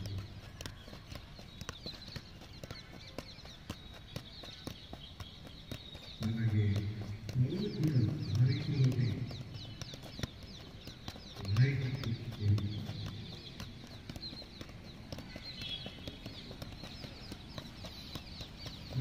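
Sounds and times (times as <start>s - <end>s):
football taps on feet: 0.0s - 19.0s
small birds chirping: 0.0s - 19.0s.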